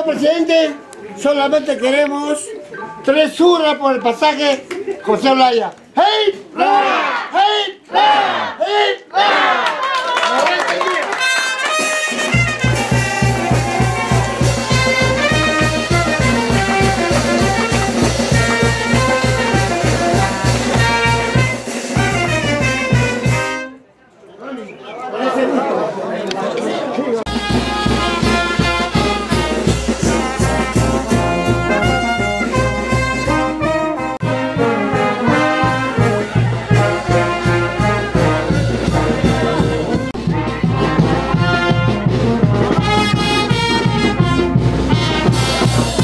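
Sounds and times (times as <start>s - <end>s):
street brass band playing: 6.0s - 9.7s, 10.8s - 24.0s, 27.2s - 46.0s.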